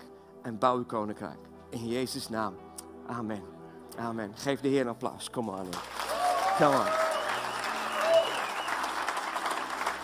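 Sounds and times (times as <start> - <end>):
congregation applauding: 5.4 - 10.0.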